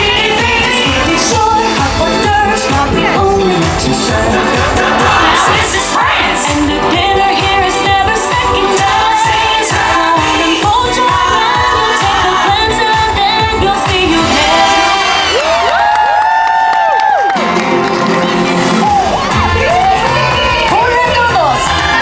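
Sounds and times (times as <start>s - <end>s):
upbeat pop song over loudspeakers: 0.0s - 22.0s.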